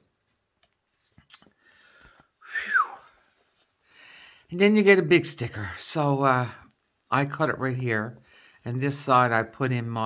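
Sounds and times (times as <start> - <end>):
breathy whistling exhale: 1.7 - 3.2.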